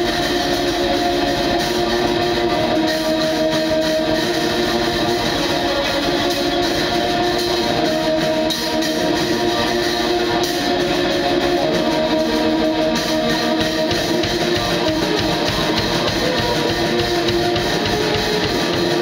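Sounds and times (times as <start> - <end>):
distorted electric guitar: 0.0 - 19.0
drums: 0.0 - 19.0.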